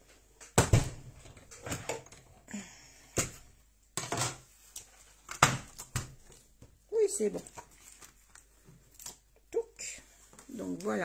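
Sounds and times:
paper rustling: 4.5s - 9.3s.

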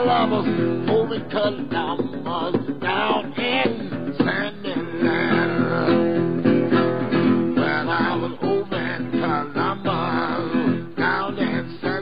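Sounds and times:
resonator guitar blues playing: 0.0s - 12.0s.

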